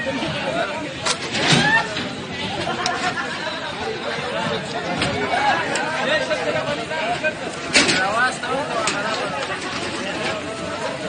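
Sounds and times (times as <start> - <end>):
men's voices chattering: 0.0 - 11.0.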